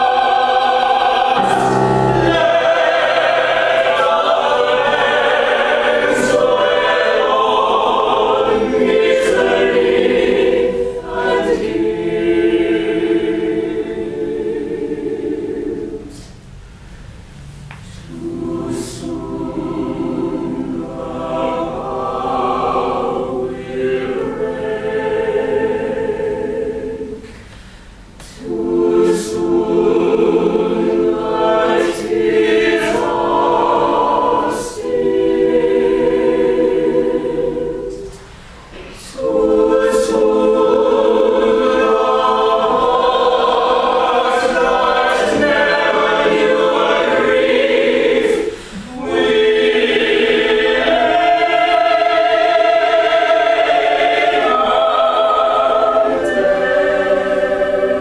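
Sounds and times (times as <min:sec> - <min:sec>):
opera ensemble singing: 0:00.0 - 0:16.5, 0:17.8 - 0:58.0.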